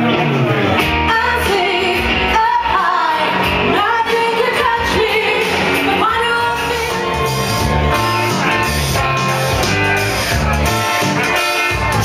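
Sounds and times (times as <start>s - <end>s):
loud backing music: 0.0s - 12.0s
woman singing into microphone: 1.0s - 7.0s.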